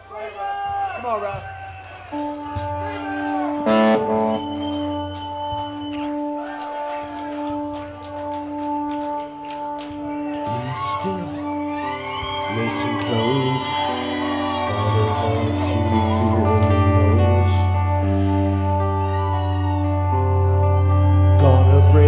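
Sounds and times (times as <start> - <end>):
crowd voices: 0.0 - 22.0
keyboard chord: 2.2 - 4.6, 14.8 - 22.0
keyboard organ-like note: 3.5 - 5.4.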